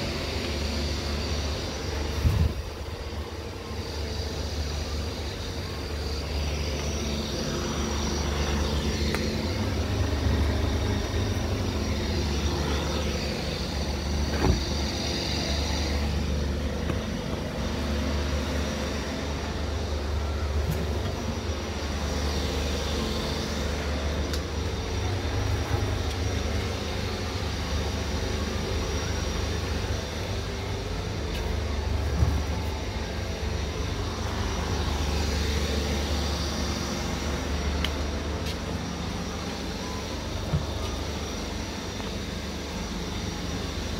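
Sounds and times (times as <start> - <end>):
low mechanical hum: 0.0 - 43.9.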